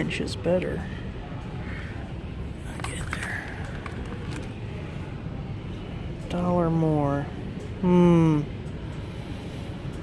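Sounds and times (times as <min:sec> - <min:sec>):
shop interior rumble: 0:00.0 - 0:10.0.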